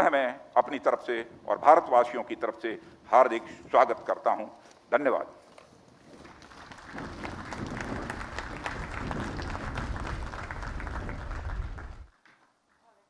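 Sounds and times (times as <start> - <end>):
audience applauding: 6.2 - 12.1.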